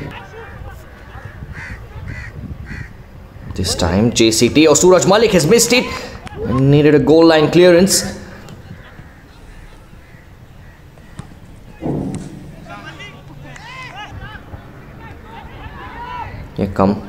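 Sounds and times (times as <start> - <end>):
players shouting: 0.0 - 2.0, 5.0 - 16.6
low field noise: 0.0 - 17.0.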